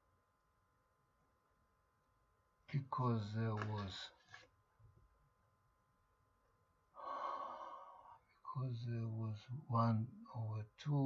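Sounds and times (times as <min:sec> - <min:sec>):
man speaking: 0:02.7 - 0:04.4, 0:08.5 - 0:11.0
man sighing: 0:07.0 - 0:08.2.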